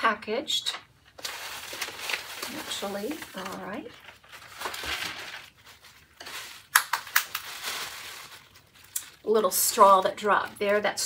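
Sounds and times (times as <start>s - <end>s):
tissue paper rustling: 1.2s - 10.0s.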